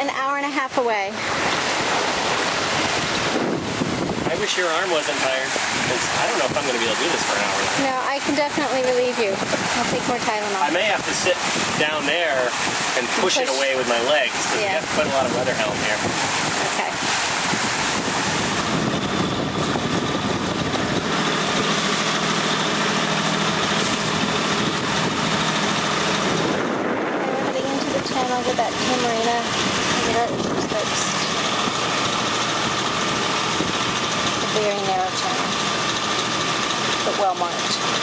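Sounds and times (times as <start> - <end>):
voices: 0.0 - 1.3, 4.2 - 17.1, 27.2 - 38.0
boat engine running: 0.0 - 38.0
water noise: 0.0 - 38.0
wind noise: 1.1 - 37.0.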